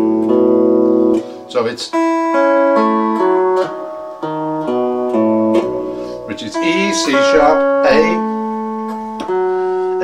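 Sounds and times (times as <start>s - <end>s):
electric steel guitar notes plucked: 0.0s - 10.0s.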